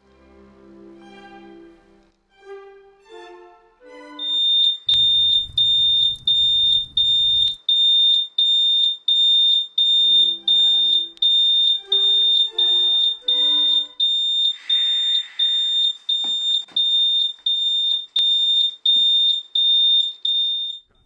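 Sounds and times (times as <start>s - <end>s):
high-pitched electronic alarm beeping: 4.2s - 20.9s
dull thumps: 4.9s - 7.6s.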